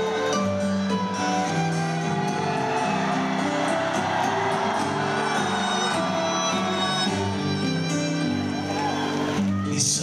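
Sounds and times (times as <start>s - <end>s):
audience cheering: 0.0s - 9.8s
distant live band playing: 0.0s - 9.8s.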